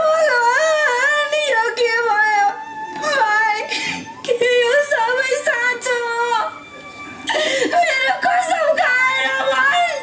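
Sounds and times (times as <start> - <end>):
woman wailing: 7.2 - 10.0.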